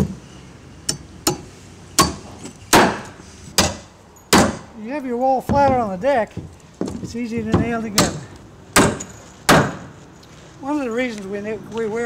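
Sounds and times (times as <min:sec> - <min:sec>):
hammer driving nails into wood: 0:02.0 - 0:04.7, 0:08.8 - 0:09.9.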